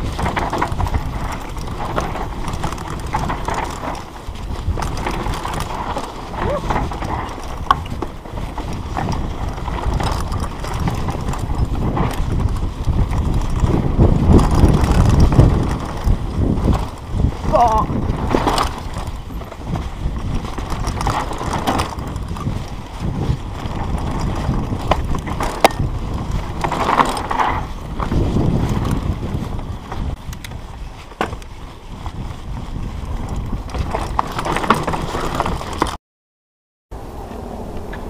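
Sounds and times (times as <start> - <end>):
bike rattles and knocks: 0.0 - 36.0
tyres rolling on loose dirt: 0.0 - 36.0
wind rushing on microphone: 0.0 - 36.0.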